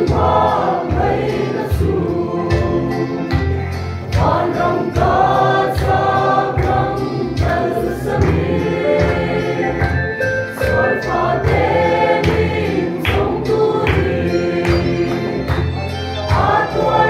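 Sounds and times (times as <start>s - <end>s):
mixed choir singing a hymn: 0.0s - 17.0s.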